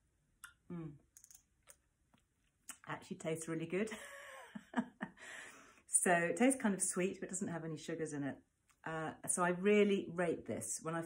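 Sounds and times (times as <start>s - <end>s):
mouth clicks and lip smacks: 0.4s - 2.9s.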